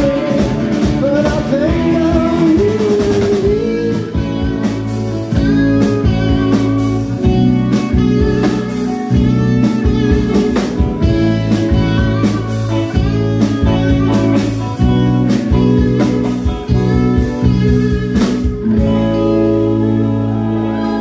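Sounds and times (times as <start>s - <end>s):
drum kit beat: 0.0s - 20.0s
bass guitar: 0.0s - 21.0s
electric guitar: 0.0s - 21.0s.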